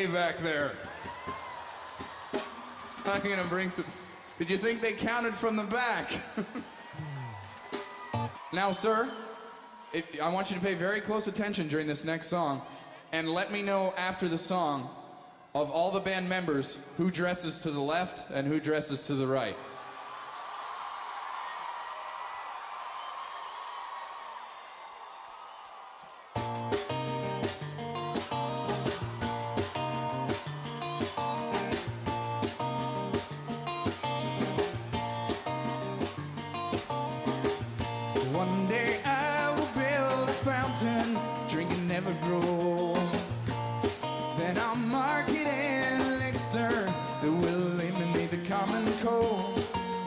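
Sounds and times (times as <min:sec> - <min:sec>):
audience noise: 0:00.0 - 0:11.7, 0:19.2 - 0:49.6
pop-rock band playing: 0:26.4 - 0:50.0
man singing: 0:38.2 - 0:43.3, 0:44.3 - 0:49.8.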